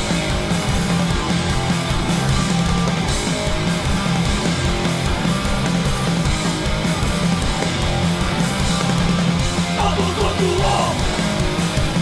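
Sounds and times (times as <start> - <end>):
punk band playing: 0.0 - 12.0.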